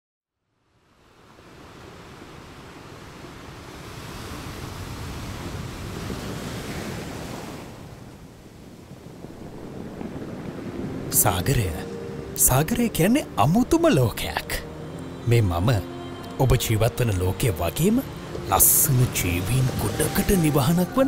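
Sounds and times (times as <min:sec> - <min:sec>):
ocean surf breaking: 0:00.9 - 0:21.0.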